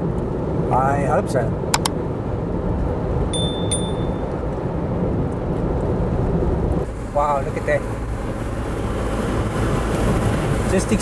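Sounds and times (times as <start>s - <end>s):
car road rumble: 0.0s - 11.0s
short high dings: 3.4s - 4.3s.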